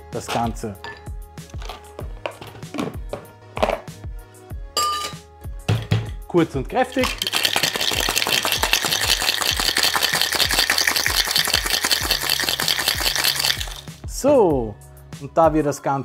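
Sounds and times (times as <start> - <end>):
music with steady beat: 0.0 - 15.7
ice rattling in cocktail shaker: 6.8 - 14.0.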